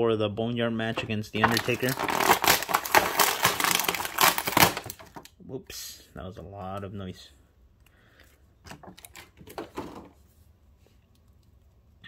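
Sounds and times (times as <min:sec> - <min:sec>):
plastic packaging crinkling: 0:00.9 - 0:05.3.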